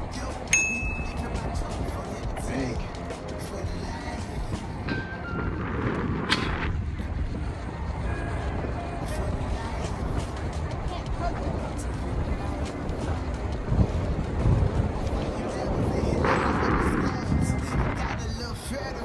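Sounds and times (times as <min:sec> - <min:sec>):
low rumble from bicycle ride: 0:00.0 - 0:19.0
wind buffeting microphone: 0:00.0 - 0:19.0.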